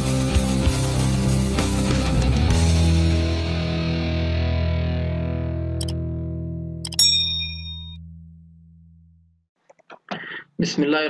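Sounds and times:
distorted electric guitar chord: 0:00.4 - 0:06.7
mouse click sound effect: 0:05.8 - 0:06.0, 0:06.8 - 0:07.0.

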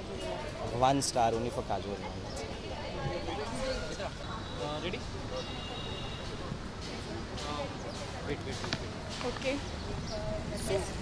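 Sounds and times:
faint voices: 0:00.0 - 0:11.0
street background noise: 0:00.0 - 0:11.0.

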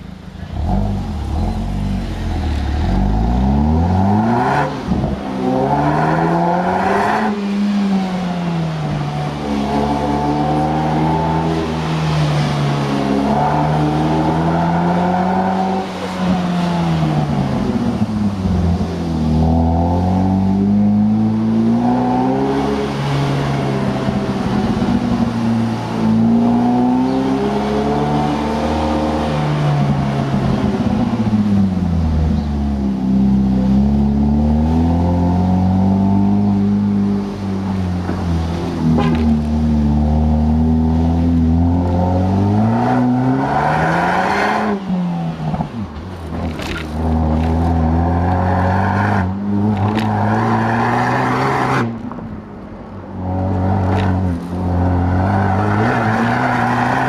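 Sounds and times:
car engine and exhaust: 0:00.0 - 0:57.0
road and wind noise: 0:00.0 - 0:57.0.

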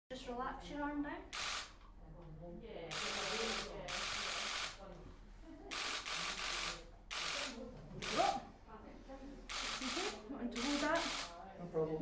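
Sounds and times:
camera shutter bursts: 0:01.3 - 0:01.8, 0:02.9 - 0:04.8, 0:05.7 - 0:08.4, 0:09.5 - 0:11.3
murmur of voices: 0:02.2 - 0:12.0.

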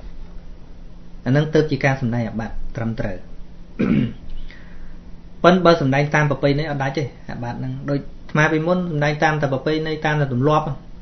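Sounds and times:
man clearing throat: 0:03.8 - 0:04.3.

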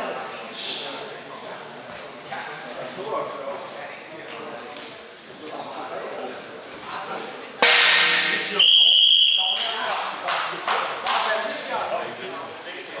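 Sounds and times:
sharp knocks: 0:07.6 - 0:08.6
referee's whistle: 0:08.6 - 0:09.8.

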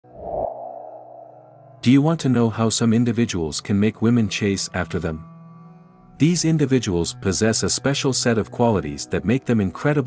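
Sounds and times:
low synth boom: 0:00.2 - 0:01.8
narrator speaking: 0:01.8 - 0:05.2.

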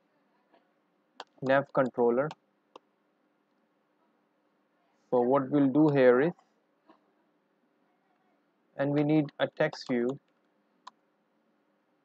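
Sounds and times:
man speaking: 0:01.4 - 0:02.4, 0:05.2 - 0:06.4, 0:08.8 - 0:10.2.

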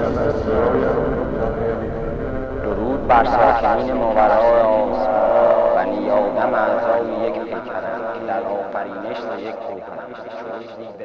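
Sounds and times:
synthesized wavering voice: 0:00.0 - 0:11.0.

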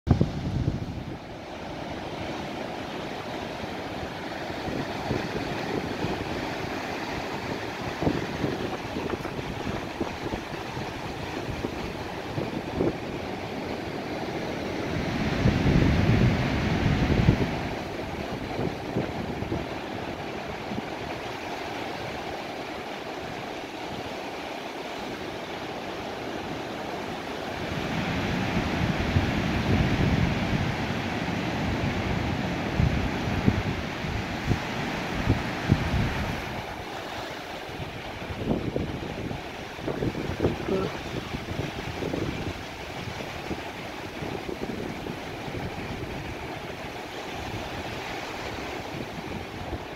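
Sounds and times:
surf breaking on beach: 0:00.1 - 0:49.9
wind buffeting microphone: 0:00.1 - 0:49.9.

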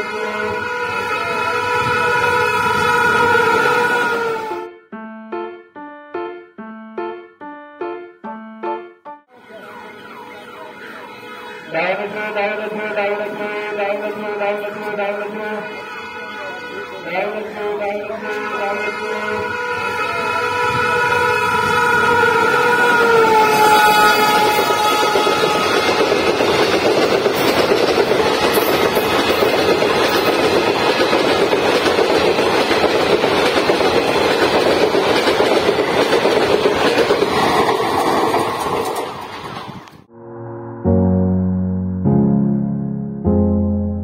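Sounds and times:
locomotive horn blast: 0:00.0 - 0:04.7, 0:09.3 - 0:26.3
train wheels on rails rushing: 0:19.8 - 0:39.9.

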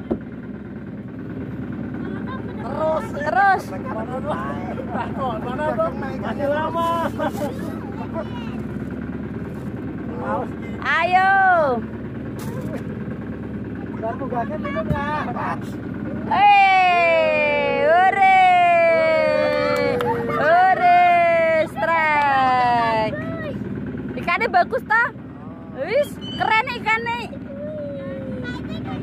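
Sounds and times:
boat engine idling: 0:00.0 - 0:29.0
person laughing: 0:19.8 - 0:20.9.

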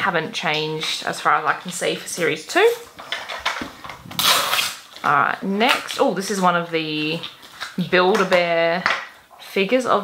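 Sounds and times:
plastic wrappers crinkling: 0:00.8 - 0:09.3.

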